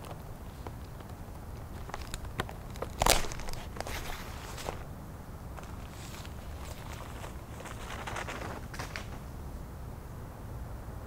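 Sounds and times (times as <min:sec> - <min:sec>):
plastic crinkling: 0:00.0 - 0:04.9, 0:05.6 - 0:09.3
rustling in leaf litter: 0:00.0 - 0:04.9, 0:05.5 - 0:09.4.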